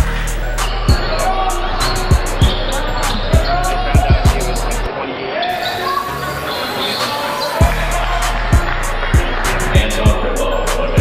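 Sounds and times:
music with sung vocals: 0:00.0 - 0:04.9, 0:05.7 - 0:11.0
deep kick drum beat: 0:03.3 - 0:04.9, 0:07.6 - 0:10.3.

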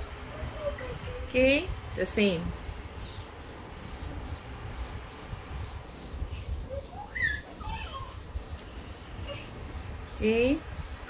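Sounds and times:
high-pitched whimpering: 0:06.6 - 0:08.3.

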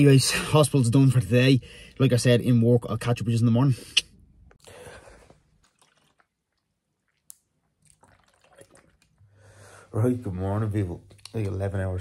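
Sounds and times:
drinking from plastic bottle: 0:04.0 - 0:09.8.

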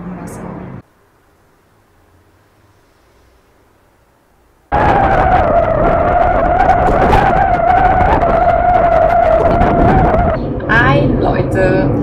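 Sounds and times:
high whine: 0:03.5 - 0:12.0
wind noise on microphone: 0:04.7 - 0:12.0.

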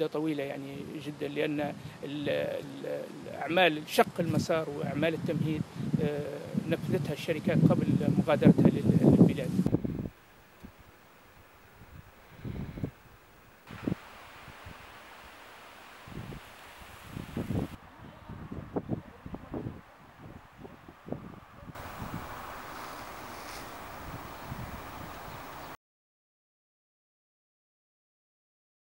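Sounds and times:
steady hiss: 0:00.0 - 0:17.8, 0:21.8 - 0:25.8
wind gusting on microphone: 0:01.6 - 0:10.8, 0:11.7 - 0:25.8.

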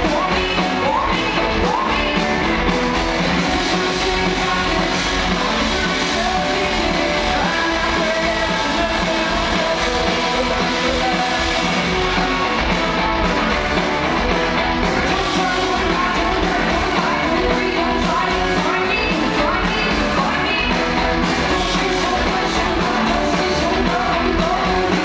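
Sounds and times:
woman singing: 0:00.0 - 0:02.6, 0:03.2 - 0:12.7, 0:14.9 - 0:25.0
live rock band: 0:00.0 - 0:25.0.

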